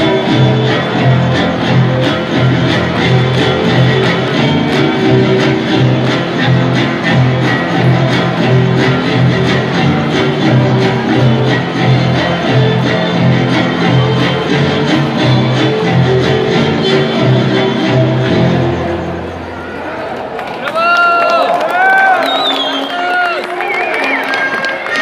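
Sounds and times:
violin dance tune: 0.0 - 19.0.

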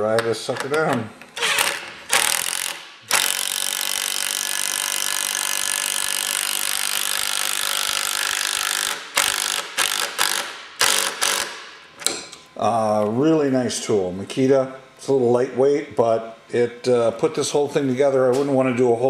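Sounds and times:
impact driver driving screw: 1.4 - 11.6.

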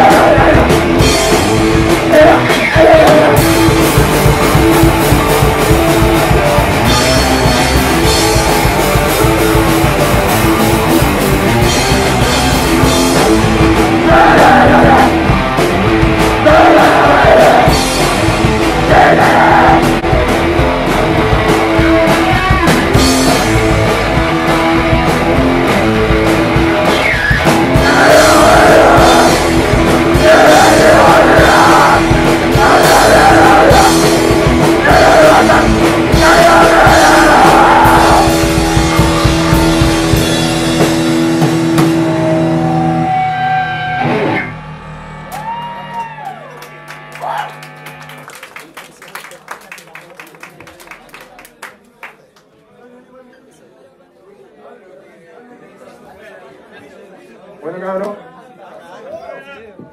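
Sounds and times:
drum and cymbal hits: 0.0 - 43.0
electric guitars: 0.0 - 48.7
live rock band playing: 0.0 - 48.7.

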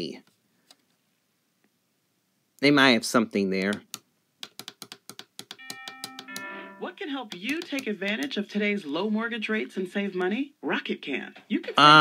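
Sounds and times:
touchscreen clicks: 3.7 - 6.6, 7.3 - 8.4
two-note chime: 5.6 - 7.0.

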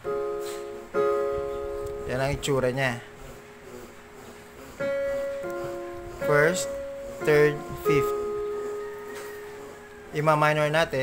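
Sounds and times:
digital keyboard chord ringing: 0.0 - 11.0.

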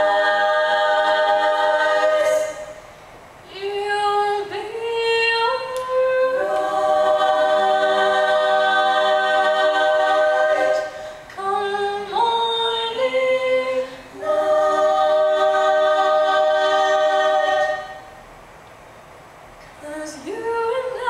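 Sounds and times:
women singing in close harmony: 0.0 - 2.8, 3.5 - 18.1, 19.8 - 21.0
singers breathing: 2.7 - 3.3, 10.8 - 11.4.

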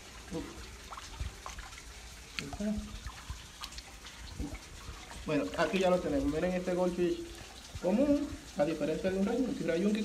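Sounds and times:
small water splashes: 0.0 - 10.0.

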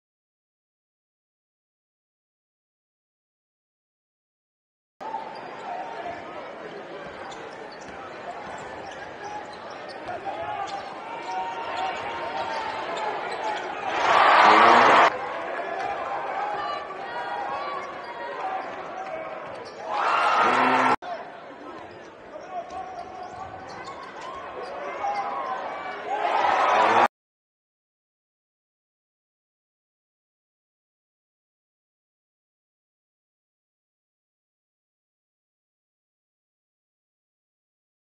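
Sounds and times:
arena crowd chatter: 5.0 - 27.1
players' voices: 5.0 - 27.1.

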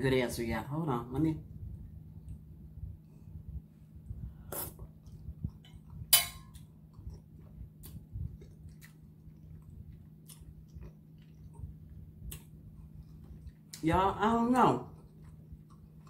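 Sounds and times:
person chewing food: 4.5 - 13.8, 14.6 - 16.0
wet mouth clicks and smacks: 7.8 - 13.8.

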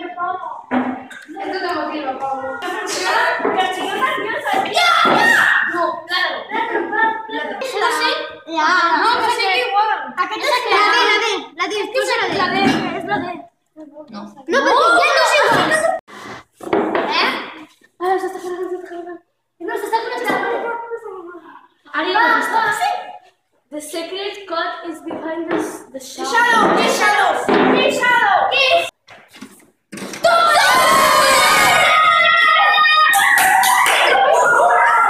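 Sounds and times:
children's excited voices: 0.0 - 16.1, 25.6 - 28.9, 30.2 - 35.0
children shrieking and cheering: 4.6 - 6.0, 30.2 - 35.0.

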